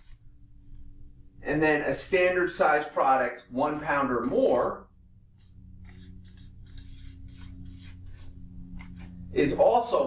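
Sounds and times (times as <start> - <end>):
marker scratching on paper: 5.4 - 9.2.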